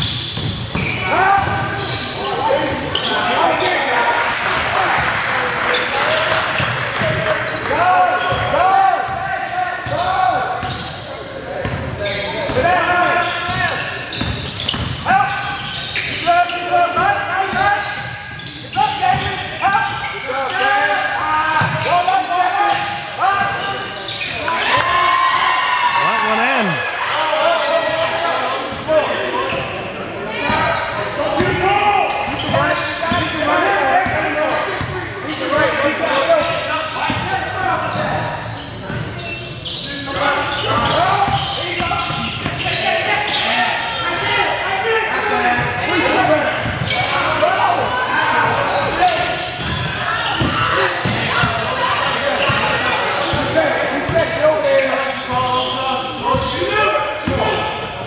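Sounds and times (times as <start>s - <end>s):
players shouting: 20.5s - 29.4s.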